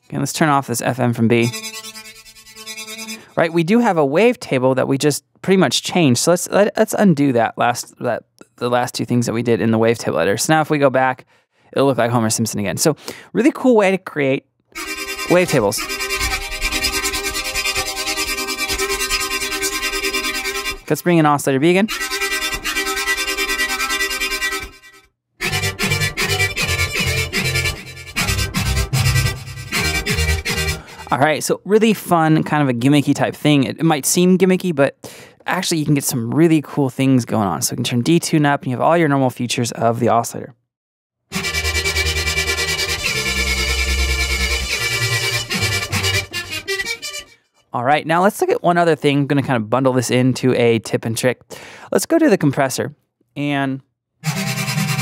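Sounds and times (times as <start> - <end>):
fluttering synthesizer note: 1.4 - 3.3, 14.8 - 20.9, 21.9 - 31.0, 41.3 - 47.3.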